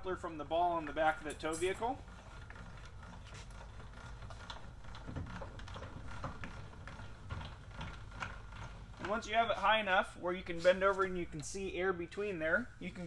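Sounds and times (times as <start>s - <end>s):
trailer jack gears clicking: 0.7s - 9.5s.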